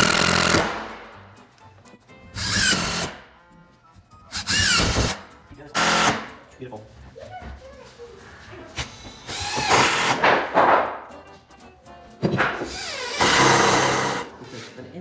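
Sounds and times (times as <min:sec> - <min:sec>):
impact driver driving screws: 0:00.0 - 0:00.9, 0:02.4 - 0:03.2, 0:04.3 - 0:05.2, 0:05.8 - 0:06.3, 0:09.2 - 0:10.3, 0:12.4 - 0:14.3.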